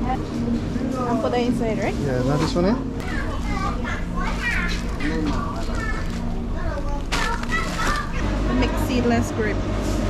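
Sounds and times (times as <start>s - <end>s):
steady low hum: 0.0s - 7.3s
children chattering: 2.0s - 9.0s.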